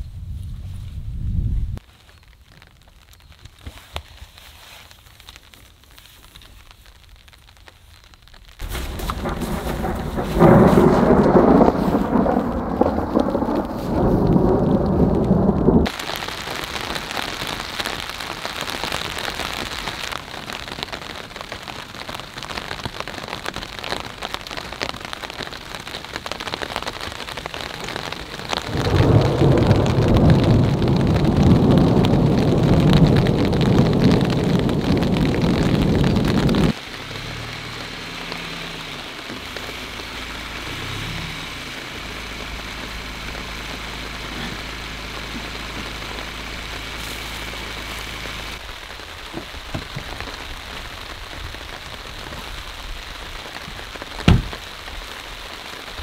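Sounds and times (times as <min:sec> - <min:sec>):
steady rain falling: 0:01.8 - 0:56.0
thunder rumbling: 0:08.6 - 0:16.2, 0:22.4 - 0:56.0.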